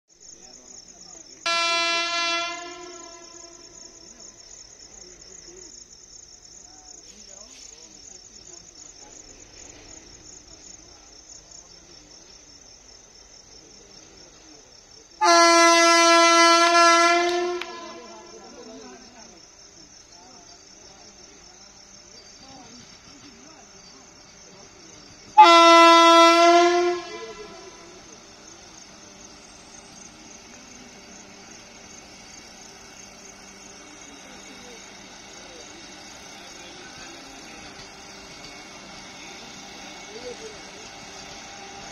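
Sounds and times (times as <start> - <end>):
insects chirring: 0.1 - 41.9
train horn blasts: 1.5 - 3.9, 15.2 - 18.3, 25.4 - 27.9.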